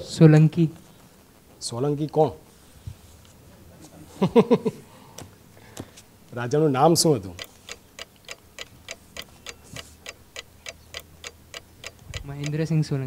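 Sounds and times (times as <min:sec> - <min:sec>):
countdown clock ticking: 0:07.4 - 0:12.7.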